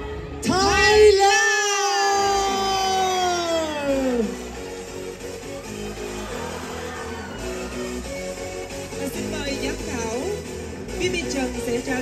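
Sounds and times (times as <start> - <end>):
woman calling over loudspeaker: 0.4 - 4.4.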